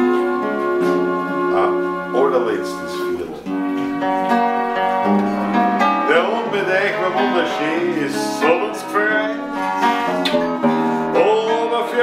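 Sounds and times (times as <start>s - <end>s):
accordion sustained chords: 0.0s - 12.0s
guitar plucked and strummed: 0.0s - 12.0s
person singing wavering notes: 5.4s - 12.0s.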